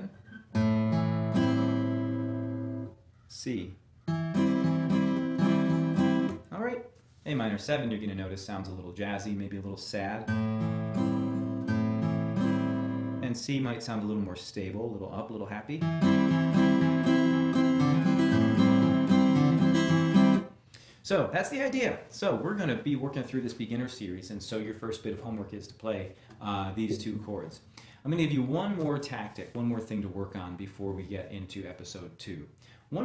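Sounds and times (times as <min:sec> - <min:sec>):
acoustic guitar chord strummed: 0:00.2 - 0:03.0, 0:04.1 - 0:06.4, 0:10.3 - 0:13.3, 0:15.8 - 0:20.5.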